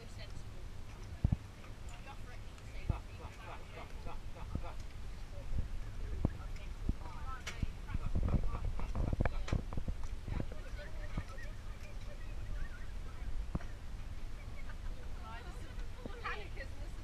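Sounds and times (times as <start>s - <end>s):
steady low rumble: 0.0s - 17.0s
short chirping calls: 10.7s - 14.8s.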